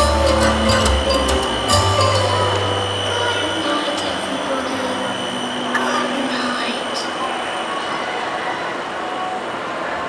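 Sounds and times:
outdoor crowd murmur: 0.0s - 10.0s.

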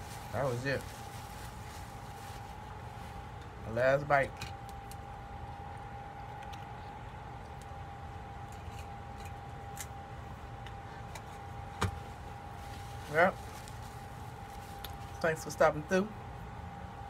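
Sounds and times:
person speaking: 0.0s - 2.2s, 3.0s - 4.4s, 12.7s - 16.2s
mechanical hum: 0.0s - 17.0s
thin constant whine: 0.0s - 17.0s.

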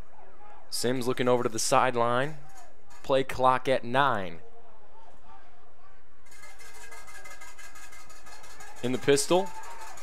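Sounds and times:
stadium crowd: 0.0s - 10.0s.

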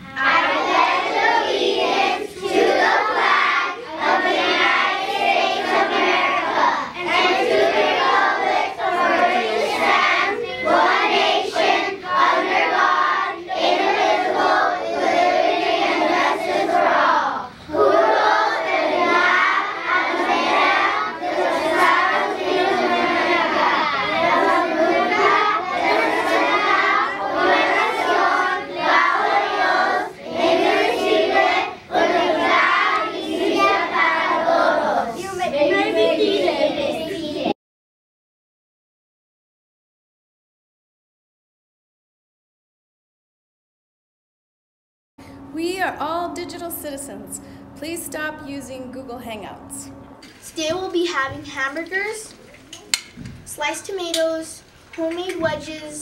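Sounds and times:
children reciting in unison: 0.0s - 37.6s.

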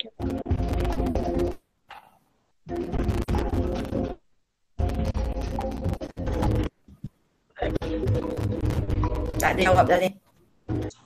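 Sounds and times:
quiz game background music: 0.0s - 1.6s, 2.6s - 4.2s, 4.8s - 6.8s, 7.6s - 11.0s.

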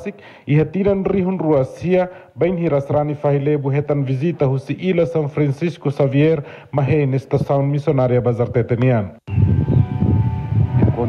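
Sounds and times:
wind buffeting microphone: 9.3s - 11.0s.

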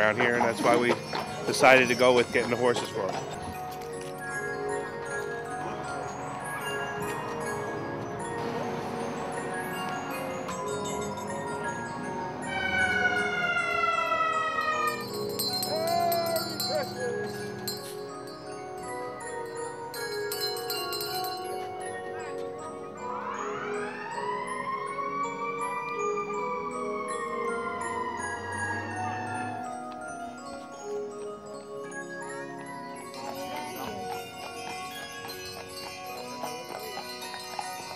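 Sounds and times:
chiming bells music: 0.0s - 37.9s
fire engine siren wailing: 11.8s - 16.9s, 22.9s - 29.7s.

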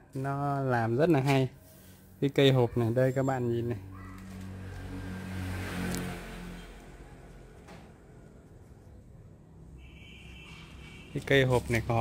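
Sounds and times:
vehicle engine hum passing: 2.0s - 12.0s.

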